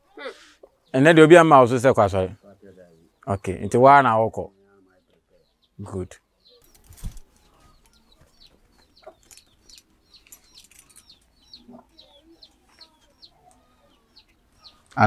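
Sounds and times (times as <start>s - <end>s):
faint bird chirps: 2.3s - 15.0s.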